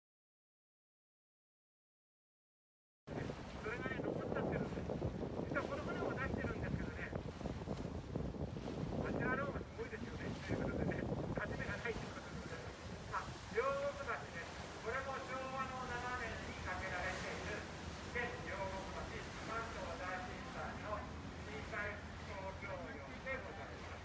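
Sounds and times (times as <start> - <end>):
boat motor rumble: 3.1 - 24.0
rushing water: 3.1 - 24.0
wind buffeting microphone: 3.1 - 24.0
people speaking: 3.6 - 4.8, 5.5 - 7.1, 9.0 - 24.0.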